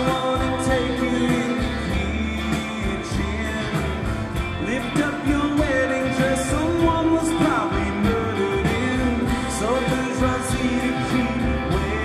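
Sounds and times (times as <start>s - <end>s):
band accompaniment: 0.0s - 12.0s
person singing: 0.0s - 12.0s
strummed acoustic guitar: 0.0s - 12.0s.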